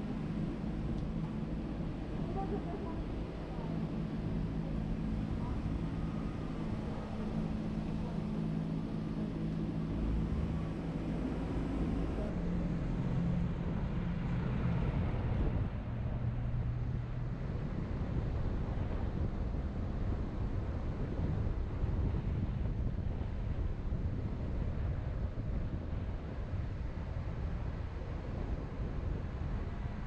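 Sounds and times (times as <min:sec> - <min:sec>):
wind rumble on microphone: 0:00.0 - 0:30.0.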